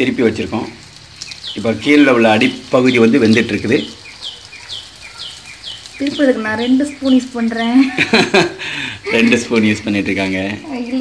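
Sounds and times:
small bird chirping: 0.0s - 11.0s.

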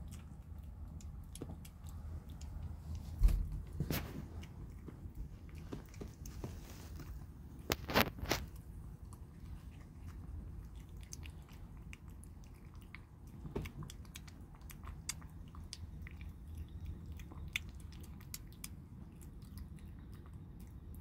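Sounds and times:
kitten chewing: 0.0s - 21.0s.

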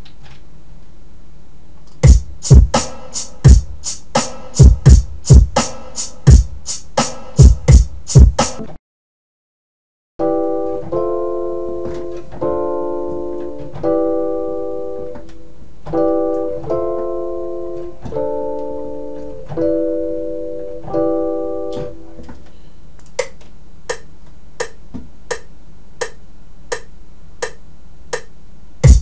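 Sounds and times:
keyboard chords: 2.0s - 8.8s, 10.2s - 29.0s.

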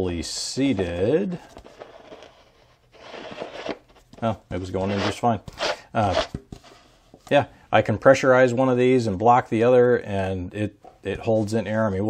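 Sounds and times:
plastic bottle rubbing and crinkling: 0.7s - 6.8s.

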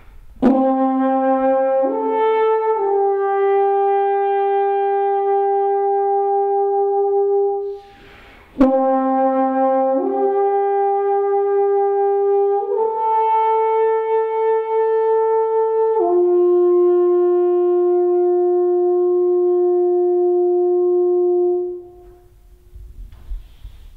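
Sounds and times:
alphorn long held notes: 8.6s - 22.3s.

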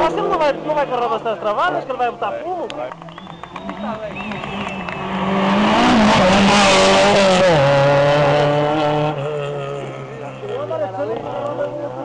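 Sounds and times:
rally car passing at speed: 2.9s - 12.0s.

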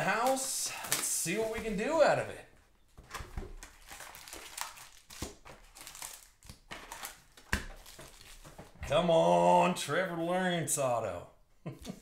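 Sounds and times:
foil wrappers crinkling: 0.0s - 2.3s, 3.0s - 8.7s.

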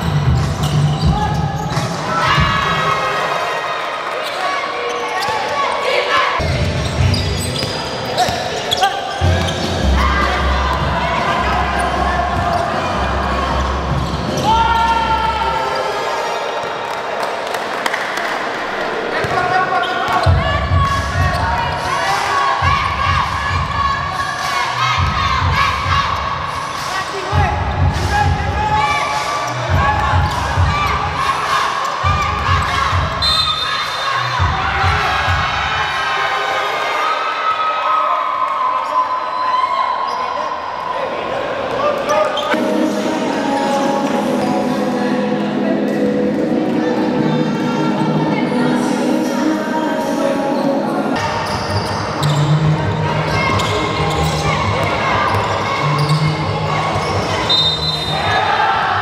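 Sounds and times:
players' voices: 0.0s - 59.0s
shoe squeaks: 0.1s - 1.9s, 4.2s - 10.3s, 31.8s - 34.4s, 42.0s - 42.6s, 50.6s - 58.3s.

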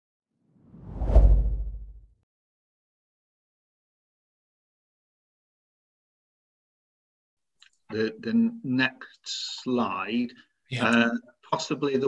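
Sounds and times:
whoosh with deep rumble: 0.7s - 2.0s.

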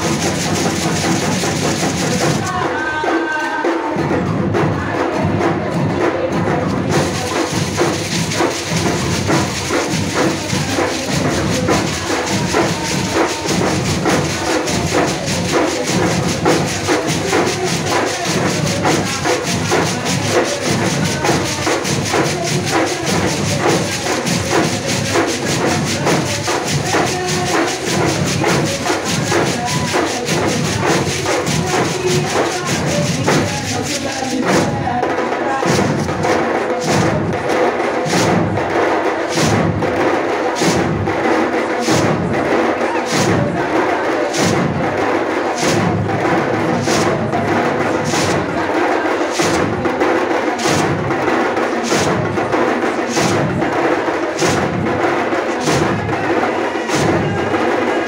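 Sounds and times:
hand drums playing: 0.0s - 4.0s, 4.8s - 37.4s, 39.2s - 58.0s
bead shakers: 7.0s - 34.4s.

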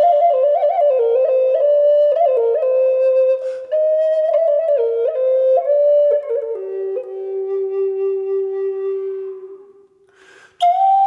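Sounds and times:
flute notes: 0.0s - 11.0s
short breathy sound: 10.0s - 10.6s.

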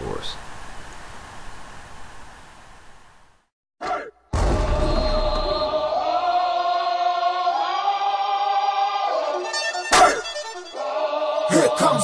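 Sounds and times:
faint steady hiss: 0.0s - 3.5s.

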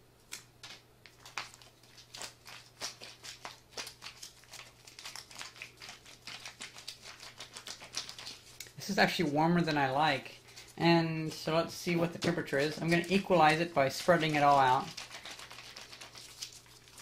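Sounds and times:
food pouch crackling and crinkling: 1.1s - 8.8s, 12.5s - 17.0s.

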